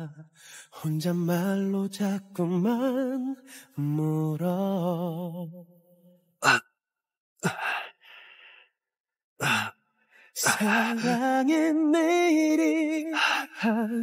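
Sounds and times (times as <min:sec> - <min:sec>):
slow sung song: 0:00.0 - 0:06.6, 0:09.4 - 0:14.0
man gasping in pain: 0:06.4 - 0:06.8, 0:07.4 - 0:08.7, 0:09.4 - 0:11.2.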